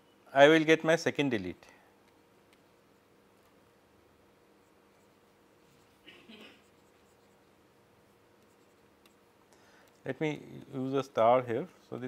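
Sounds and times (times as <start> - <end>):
stylus scratching on tablet: 4.6 - 7.7, 8.4 - 9.2.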